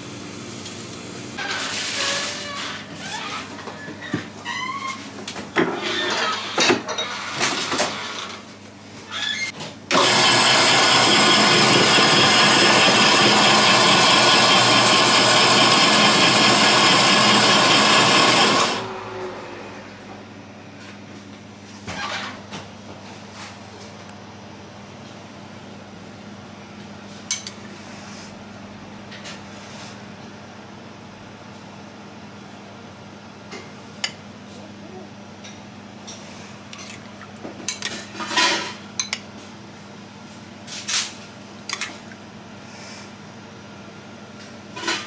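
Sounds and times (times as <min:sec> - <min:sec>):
ice shaving machine running: 0:09.9 - 0:19.9.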